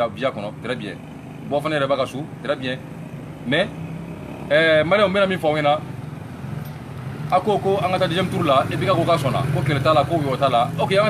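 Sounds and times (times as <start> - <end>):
man speaking: 0.0 - 2.9, 3.5 - 3.8, 4.5 - 5.9, 7.3 - 11.0.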